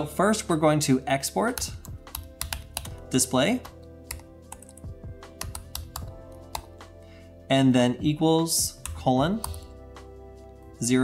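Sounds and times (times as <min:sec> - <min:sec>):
soft background music: 0:00.0 - 0:11.0
computer keyboard typing: 0:01.5 - 0:03.1, 0:04.1 - 0:06.8, 0:08.7 - 0:09.7.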